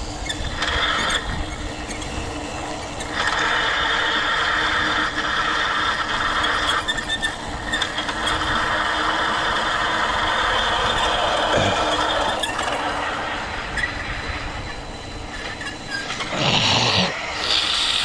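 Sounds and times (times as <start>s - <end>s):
electric motor whine: 0.0s - 18.0s
tyres humming on asphalt: 0.0s - 18.0s.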